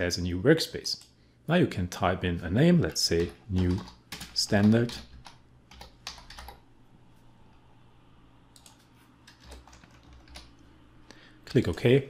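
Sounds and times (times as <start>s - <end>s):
typing on keyboard: 3.1s - 6.6s, 8.6s - 10.6s.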